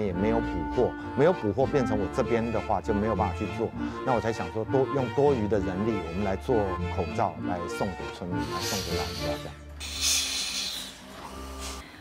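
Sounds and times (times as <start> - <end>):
steam iron hissing: 8.4 - 11.9.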